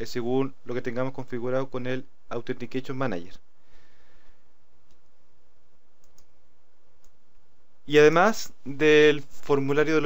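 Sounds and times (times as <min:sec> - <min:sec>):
low hum and hiss: 0:00.0 - 0:10.0
computer mouse clicks: 0:04.8 - 0:05.1, 0:06.0 - 0:06.4, 0:07.0 - 0:07.2.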